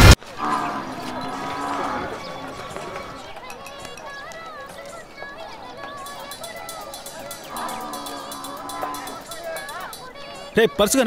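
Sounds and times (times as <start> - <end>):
cattle lowing: 0.2 - 3.6, 6.8 - 10.0
murmur of voices: 0.2 - 11.0
quick ticks: 6.0 - 10.3.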